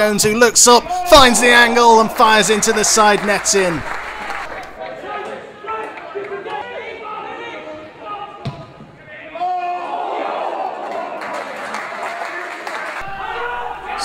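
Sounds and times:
players and spectators shouting: 0:00.0 - 0:11.6, 0:12.2 - 0:14.0
ball being kicked thud: 0:08.4 - 0:09.0.

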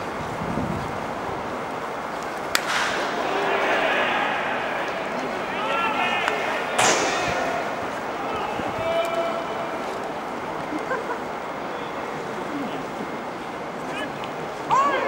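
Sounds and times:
ballpark background noise: 0:00.0 - 0:15.0
baseball bat cracks: 0:02.4 - 0:05.5, 0:06.2 - 0:08.0
spectators calling out: 0:02.5 - 0:15.0.

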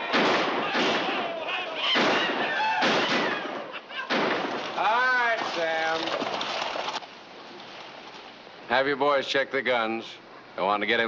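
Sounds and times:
men yelling: 0:00.0 - 0:04.2
pistol shots: 0:00.0 - 0:04.9.

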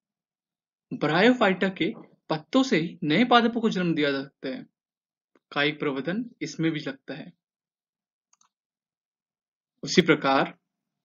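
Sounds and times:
faint clicks: 0:08.3 - 0:08.6.

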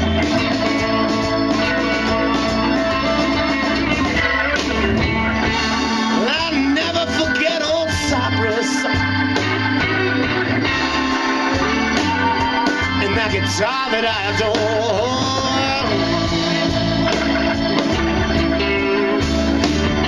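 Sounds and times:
electric guitar: 0:00.0 - 0:20.0
organ holding chords: 0:00.0 - 0:20.0.

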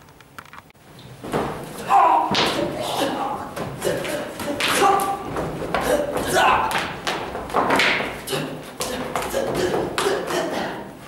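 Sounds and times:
thuds of stick and hand blows: 0:01.2 - 0:10.4.

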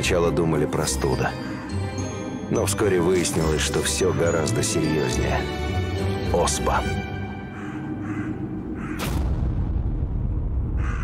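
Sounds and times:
background music drone: 0:00.0 - 0:11.0
crow cawing: 0:07.4 - 0:09.1, 0:10.8 - 0:11.0.

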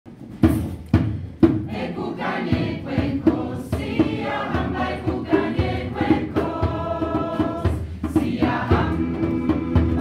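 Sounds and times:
low beat thumps: 0:00.1 - 0:10.0
mixed choir singing: 0:01.7 - 0:10.0.

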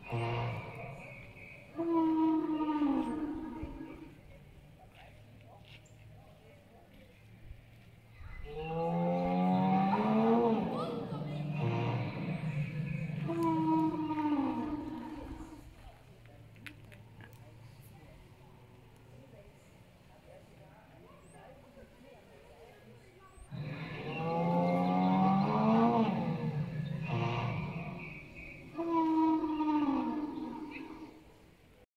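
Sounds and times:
dinosaur roar over loudspeaker: 0:00.0 - 0:04.2, 0:08.5 - 0:15.8, 0:23.5 - 0:31.2.

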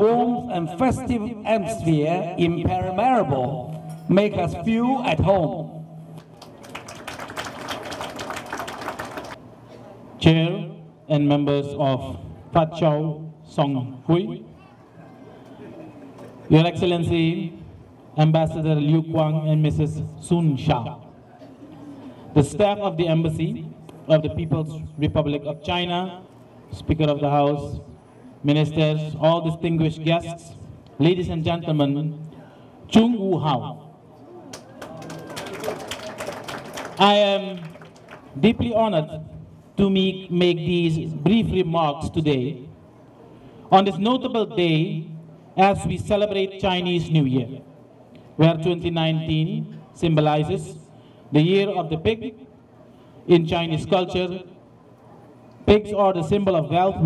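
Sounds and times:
audience applause: 0:06.3 - 0:09.4, 0:34.5 - 0:38.3.

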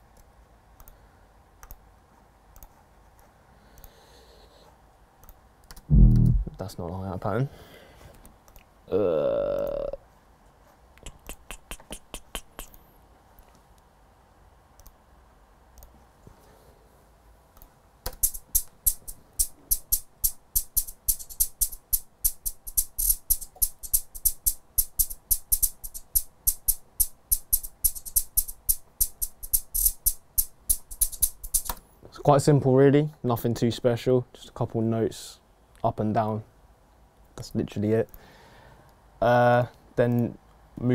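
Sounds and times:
drum machine hi-hat pattern: 0:05.9 - 0:06.6, 0:18.2 - 0:31.7.

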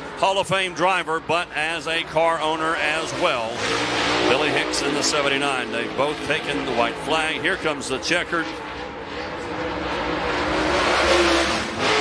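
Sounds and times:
race car engine at full throttle: 0:00.0 - 0:12.0.

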